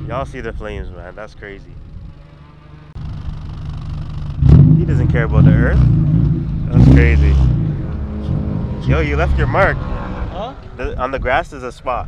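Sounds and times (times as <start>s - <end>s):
car engine idling: 0.0s - 10.2s.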